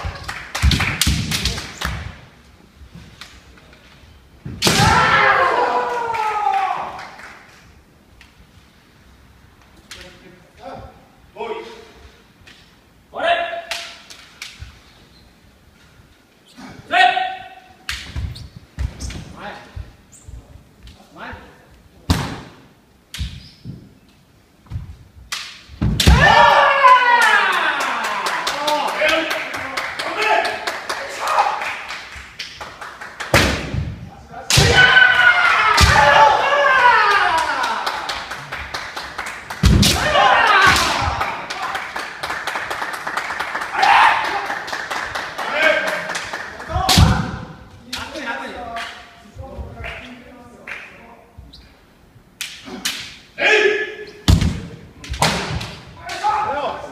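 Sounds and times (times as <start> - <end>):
bamboo swords cracking: 4.6 - 5.1, 25.2 - 26.4, 39.6 - 41.0, 52.4 - 53.3, 54.3 - 56.3
bamboo swords knocking together: 24.7 - 26.4, 54.3 - 56.3
thud: 25.8 - 26.4, 39.6 - 41.1, 54.3 - 55.8
high-pitched drawn-out shout: 26.2 - 28.4.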